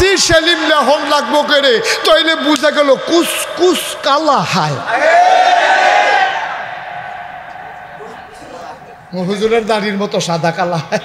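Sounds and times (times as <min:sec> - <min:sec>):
man shouting through loudspeaker: 0:00.0 - 0:05.2
low crowd sound: 0:02.9 - 0:10.9.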